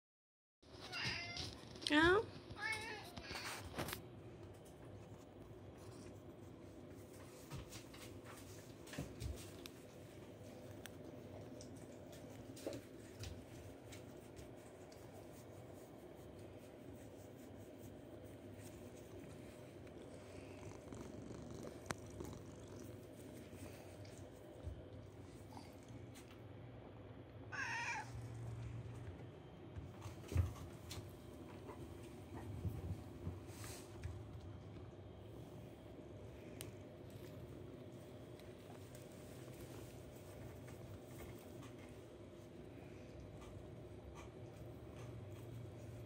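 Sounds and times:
kitten purring: 3.6s - 26.6s, 28.1s - 46.0s.

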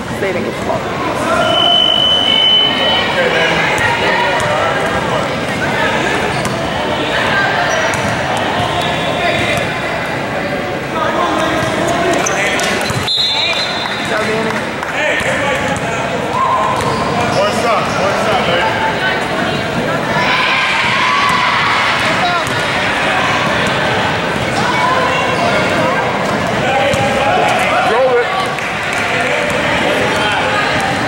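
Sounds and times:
many voices talking in gym: 0.0s - 31.0s
short high whistle: 1.4s - 3.0s
basketball bouncing on court: 22.0s - 22.7s.

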